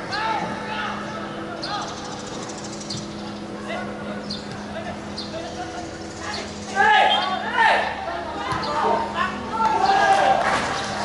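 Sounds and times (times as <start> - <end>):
players shouting: 0.0 - 2.0, 3.5 - 11.0
steady low hum: 0.0 - 11.0.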